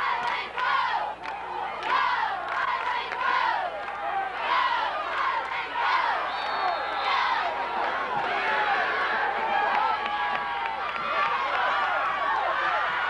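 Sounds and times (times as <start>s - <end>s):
stadium crowd shouting and cheering: 0.0s - 13.0s.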